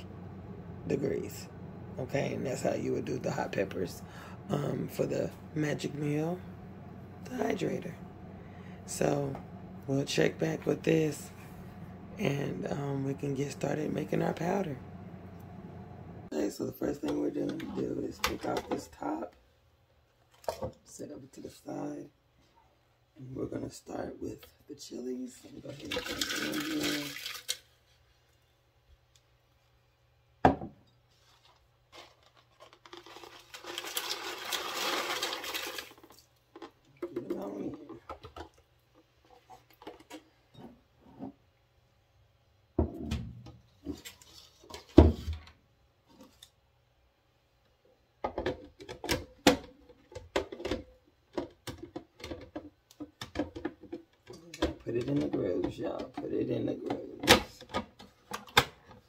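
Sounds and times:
dried peppers rattling into bowl: 31.9 - 36.2.

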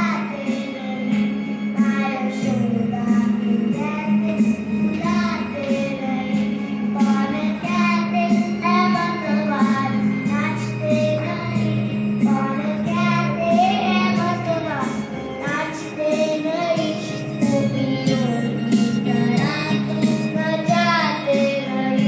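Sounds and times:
boy singing: 0.0 - 18.5, 19.1 - 22.0
electronic keyboard chords and beat: 2.7 - 21.6.

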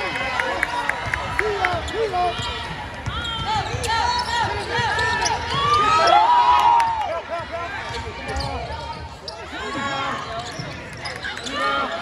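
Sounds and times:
sneakers squeaking: 1.0 - 6.2, 7.6 - 12.0.

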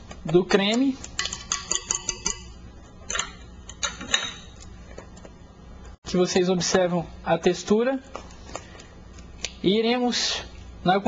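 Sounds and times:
utensil tapping mixing bowl: 0.0 - 2.5
low steady hum: 0.0 - 11.0.

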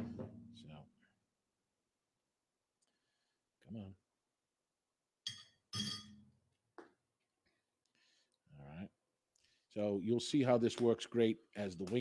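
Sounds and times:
glass bottles clinking: 5.3 - 6.2.

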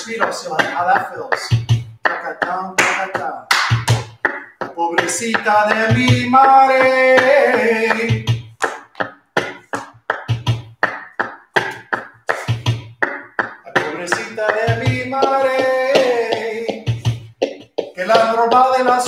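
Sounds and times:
man singing: 0.0 - 3.5, 4.6 - 8.5, 13.5 - 17.2, 17.8 - 19.0
sharp percussive strikes: 0.0 - 19.0.

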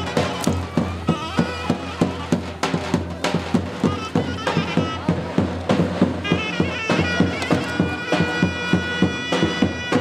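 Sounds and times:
nasal reed melody: 0.0 - 10.0.

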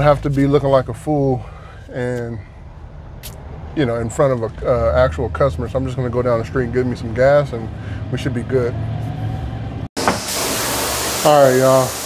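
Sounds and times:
engine and road hum: 0.0 - 10.3
cleaning wand airflow hiss: 10.1 - 12.0.

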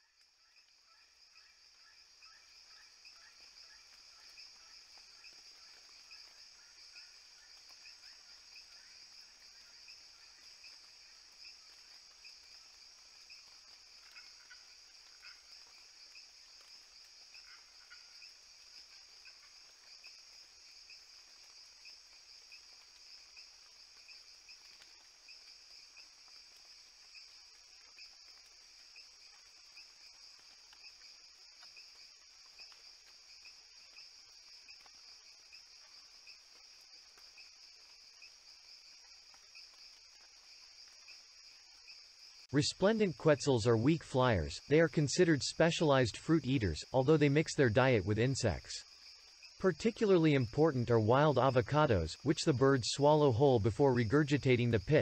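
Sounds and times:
insects trilling: 0.0 - 55.0.

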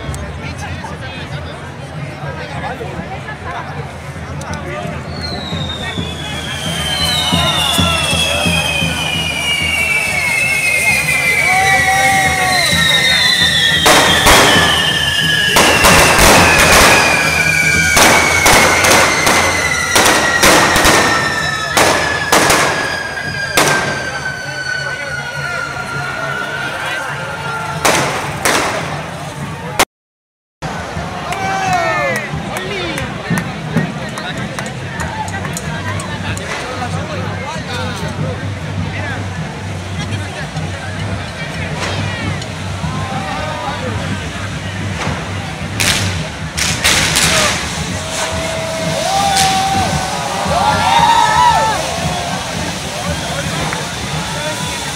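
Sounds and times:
long falling whistle: 5.1 - 27.8, 47.8 - 54.9
firecracker bangs: 5.3 - 24.7, 27.7 - 29.8, 44.0 - 54.9
crowd shouting: 5.8 - 29.8, 30.6 - 32.9, 47.1 - 54.9
spark fountain hissing: 6.6 - 24.3, 45.9 - 54.9
sharp pop: 27.9 - 29.0, 45.8 - 47.6.

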